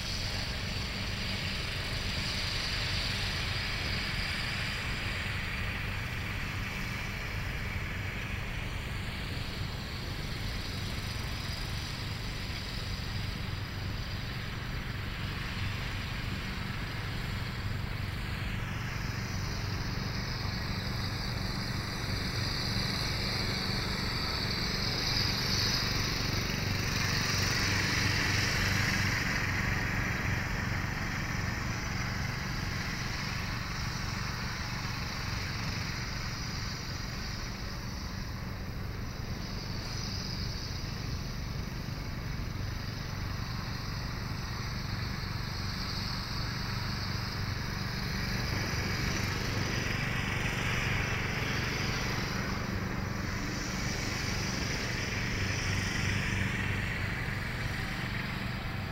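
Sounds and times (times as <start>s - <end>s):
model plane motor whine: 0.0s - 58.9s.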